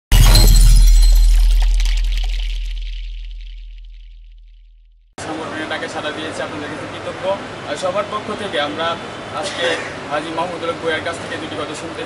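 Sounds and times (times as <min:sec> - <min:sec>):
loud hit with deep tone: 0:00.1 - 0:04.9.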